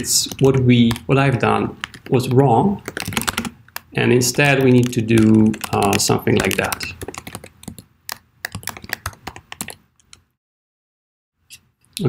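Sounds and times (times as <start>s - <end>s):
keyboard typing: 0.0s - 10.3s.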